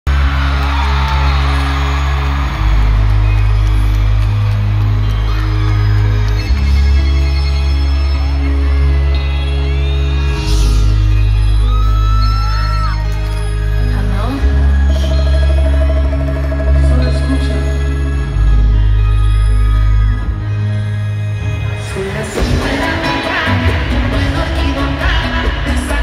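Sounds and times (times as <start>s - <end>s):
crowd whooping and cheering: 0.0s - 20.9s
deep sustained bass chords: 0.1s - 21.8s
live band music over sound system: 0.1s - 26.0s.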